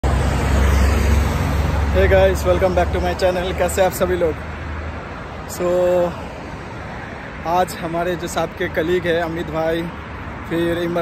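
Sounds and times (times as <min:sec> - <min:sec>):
car driving past: 0:00.0 - 0:02.4
traffic low rumble: 0:00.0 - 0:11.0.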